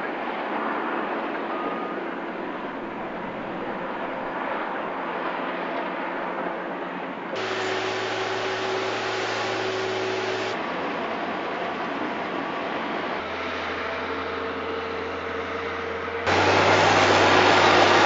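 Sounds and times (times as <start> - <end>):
heavy diesel machinery rumbling: 7.4 - 18.0.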